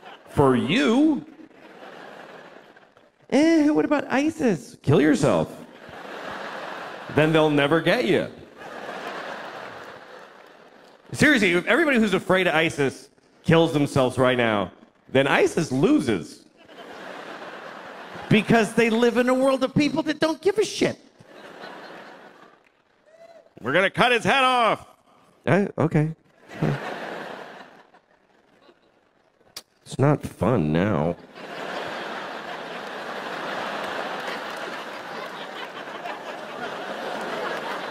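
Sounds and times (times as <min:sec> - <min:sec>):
audience laughing: 0:00.0 - 0:04.0, 0:05.5 - 0:12.2, 0:16.4 - 0:19.8, 0:21.2 - 0:23.0, 0:26.4 - 0:29.2, 0:30.9 - 0:37.9
audience applauding: 0:08.5 - 0:12.0, 0:31.4 - 0:37.9.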